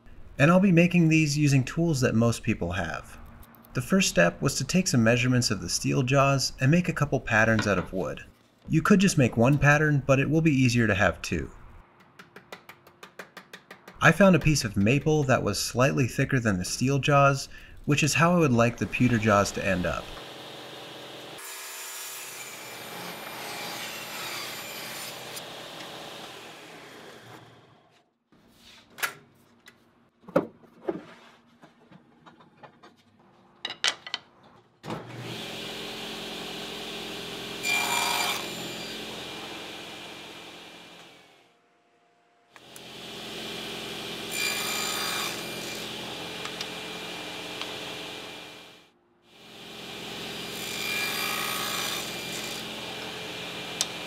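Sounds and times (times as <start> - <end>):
table saw cutting wood: 18.2 - 28.0, 35.0 - 41.5, 42.6 - 54.0.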